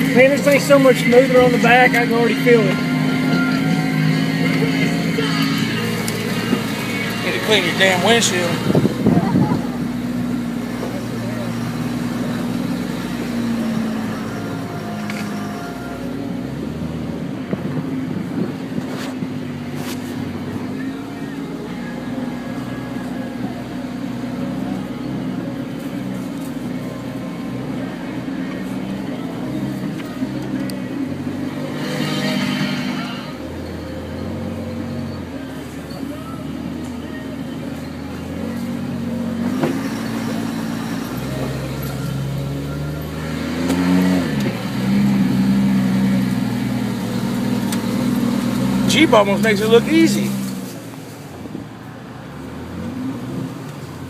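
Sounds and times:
off-road vehicle engine: 0.0s - 54.0s.

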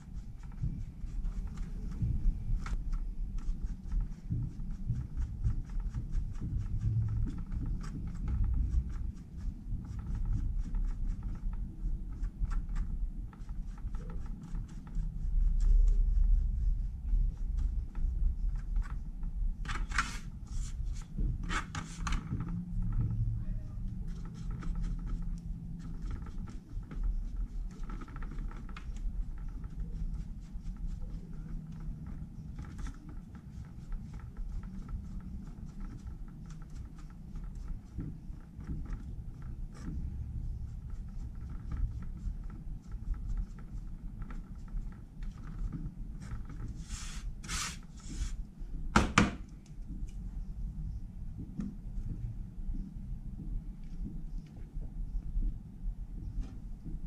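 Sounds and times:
steady low rumble: 0.0s - 57.0s.

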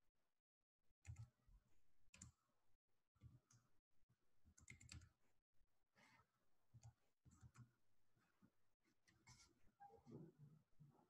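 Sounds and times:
keyboard and mouse clicks: 4.6s - 5.1s.

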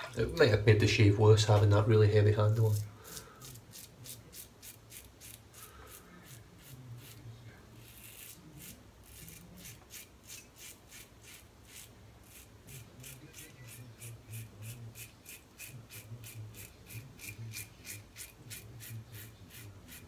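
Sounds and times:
razor scraping stubble: 2.4s - 20.0s.

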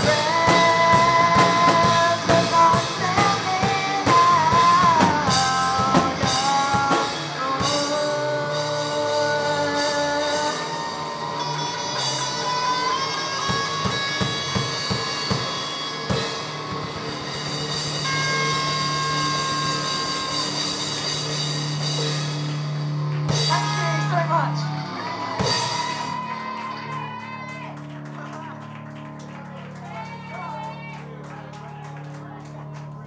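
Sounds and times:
electric guitar chords: 0.0s - 33.0s.

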